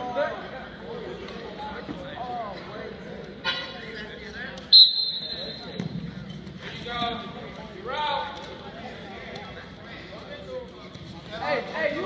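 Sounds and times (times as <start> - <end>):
sharp whistle blast: 4.7 - 5.6.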